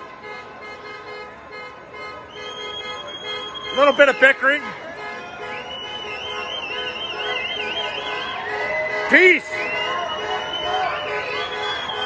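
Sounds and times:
steady held street tones: 0:00.0 - 0:12.0.

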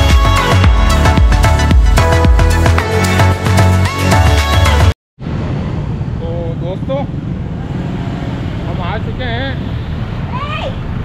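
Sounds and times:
traffic engines rumbling: 0:05.2 - 0:11.0.

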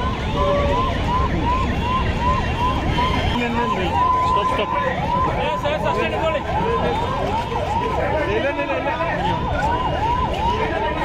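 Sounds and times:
crowd chatter: 0:00.0 - 0:11.0
police siren yelping: 0:00.0 - 0:11.0.

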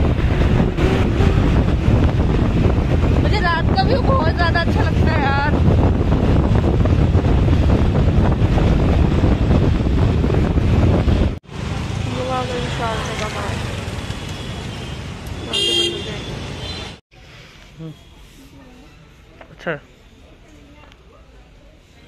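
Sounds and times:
wind rushing over microphone: 0:00.0 - 0:11.4
road traffic: 0:00.0 - 0:22.0
street traffic noise: 0:00.0 - 0:22.0
vehicle horn blast: 0:14.4 - 0:17.0.

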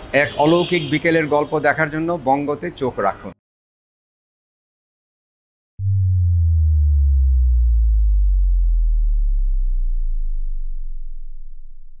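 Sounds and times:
deep synthesized gliding tone: 0:05.8 - 0:12.0.

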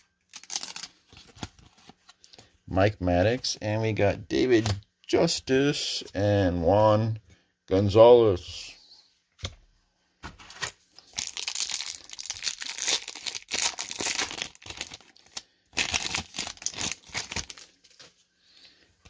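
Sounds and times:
foil wrapper tearing and crinkling: 0:00.3 - 0:01.7, 0:11.0 - 0:18.0.

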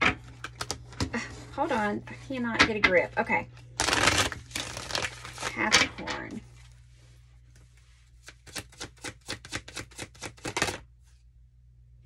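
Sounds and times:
cards being shuffled: 0:03.8 - 0:05.8, 0:08.1 - 0:10.9.

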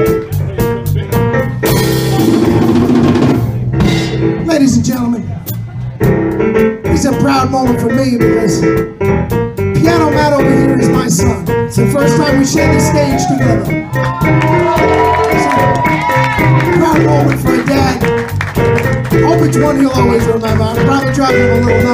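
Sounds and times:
electric blues band playing: 0:00.0 - 0:21.9
bending lead guitar notes: 0:12.2 - 0:19.2.

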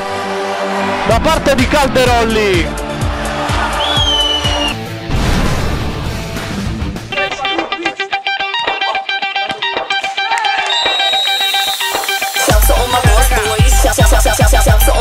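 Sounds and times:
pulsing guitar-like pattern: 0:06.0 - 0:15.0
background music with guitar and beat: 0:06.3 - 0:15.0.

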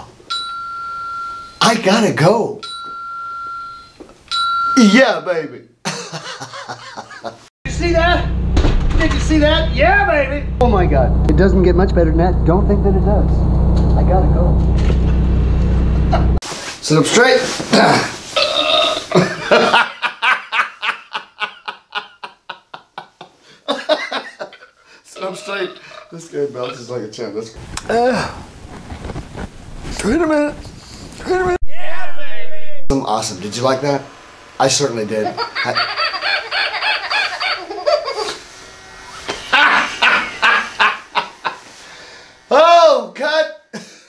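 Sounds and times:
person chuckling: 0:05.8 - 0:07.4, 0:17.8 - 0:26.1
man laughing hard: 0:05.8 - 0:07.5, 0:19.0 - 0:26.1, 0:35.2 - 0:38.4, 0:39.4 - 0:41.7.

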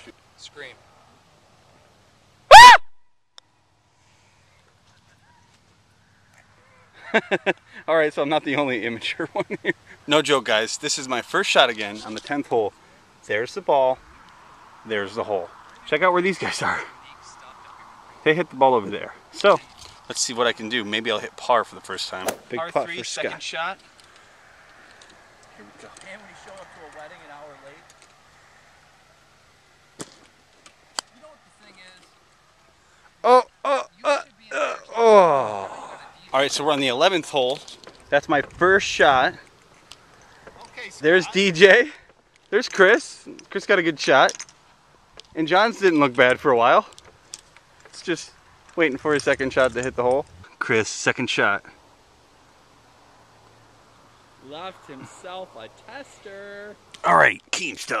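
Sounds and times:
person yelping: 0:02.5 - 0:02.8, 0:33.3 - 0:36.1
golf putter striking ball: 0:22.2 - 0:22.6.

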